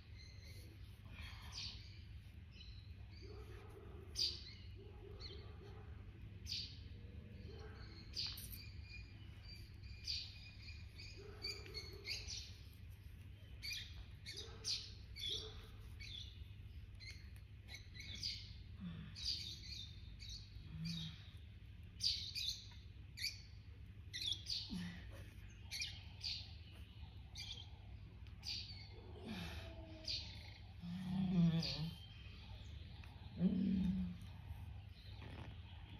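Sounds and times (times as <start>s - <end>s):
birds chirping: 0.0s - 35.9s
low steady hum: 0.0s - 35.9s.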